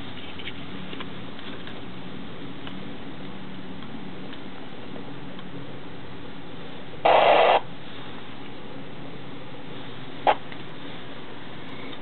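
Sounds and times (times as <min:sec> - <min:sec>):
loud burst of static: 0:07.0 - 0:07.7
radio transceiver hiss: 0:07.0 - 0:07.7.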